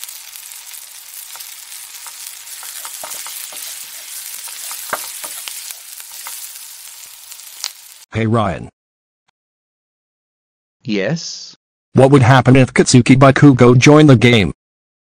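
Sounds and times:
crackling pops: 0.0s - 8.0s
food sizzling on grill: 0.0s - 8.1s.

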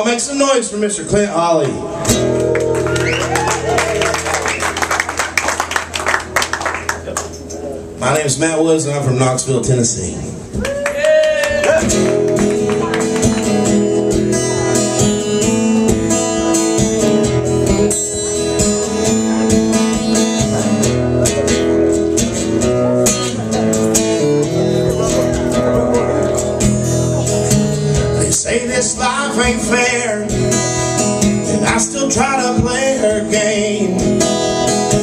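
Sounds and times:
guitar strumming chords: 1.6s - 8.6s, 11.8s - 35.0s.

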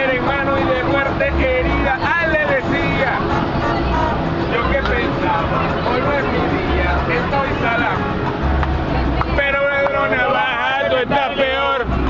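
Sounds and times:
men singing and shouting: 0.0s - 12.0s
vehicle running noise: 0.0s - 12.0s.

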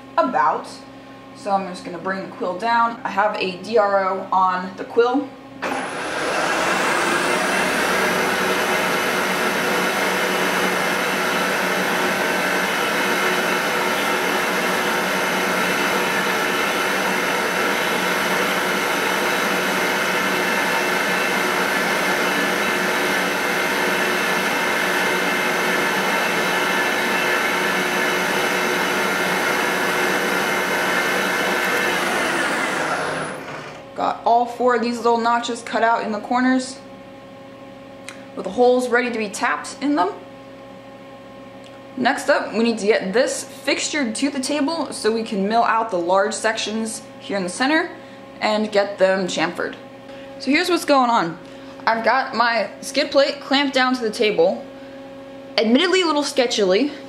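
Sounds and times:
milling machine spindle whine: 5.6s - 34.0s.

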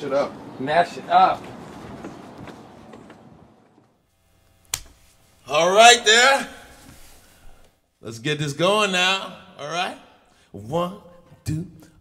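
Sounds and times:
sharp click: 4.7s - 5.0s.

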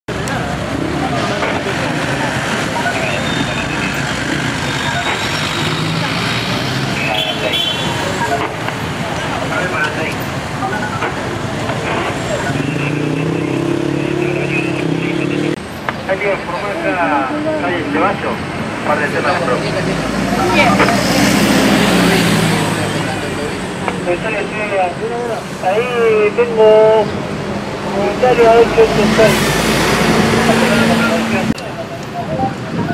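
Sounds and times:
people talking: 0.1s - 27.2s, 27.8s - 32.9s
car and motorcycle engines: 0.1s - 32.9s.

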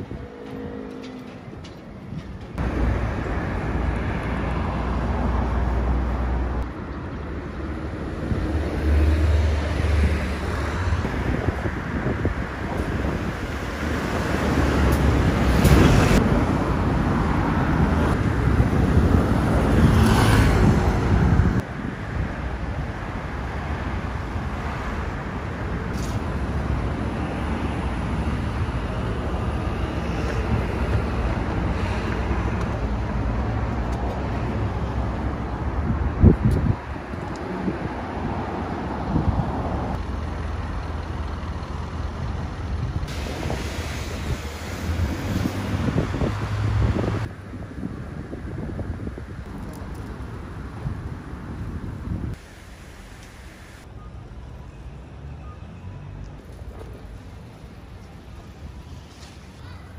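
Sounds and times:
passing cars hum: 0.0s - 54.0s.

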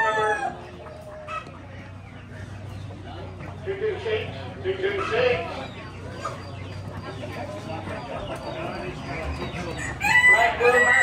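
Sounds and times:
rooster crowing: 0.0s - 0.6s, 9.8s - 11.0s
chicken calls: 0.0s - 11.0s.

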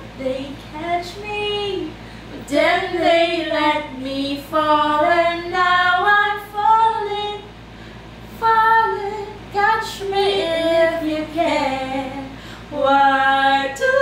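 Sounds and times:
two women singing unaccompanied: 0.0s - 7.5s, 8.3s - 14.0s.

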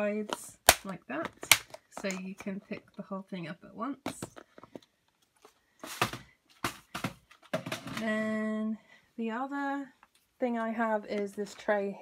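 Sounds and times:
plastic boxes clicking and knocking: 0.2s - 2.9s, 4.1s - 8.3s.

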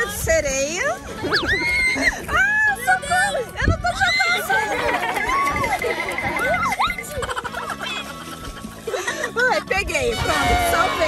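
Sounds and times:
background music: 0.0s - 11.0s
girl squealing and laughing: 1.2s - 2.6s, 5.2s - 8.6s.

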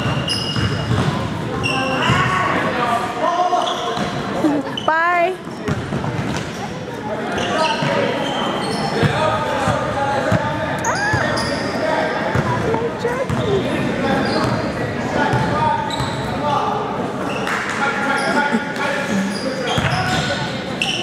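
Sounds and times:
basketball bouncing: 0.0s - 1.2s, 12.3s - 13.6s
sneakers squeaking on floor: 0.0s - 2.4s, 3.5s - 16.5s, 17.2s - 21.0s
people calling out: 10.8s - 11.6s.

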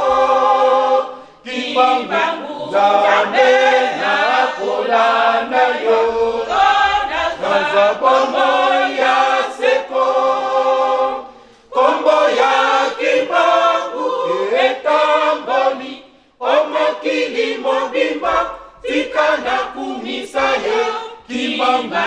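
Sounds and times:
mixed choir singing a hymn: 0.0s - 22.0s.

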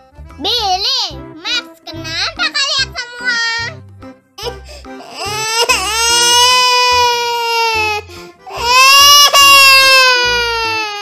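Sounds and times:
background music with steady beat: 0.0s - 11.0s
child crying: 4.4s - 11.0s.

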